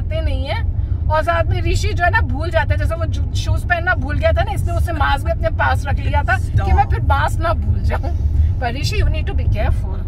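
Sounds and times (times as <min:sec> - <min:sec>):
road and engine rumble: 0:00.0 - 0:10.0
woman talking: 0:00.0 - 0:10.0.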